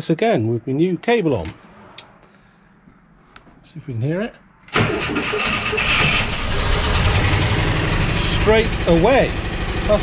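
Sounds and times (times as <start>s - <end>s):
van engine running: 4.8s - 10.0s.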